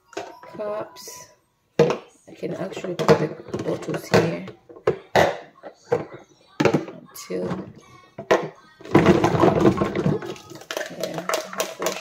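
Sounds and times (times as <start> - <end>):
plastic bottle parts clattering: 0.0 - 0.7, 1.8 - 12.0.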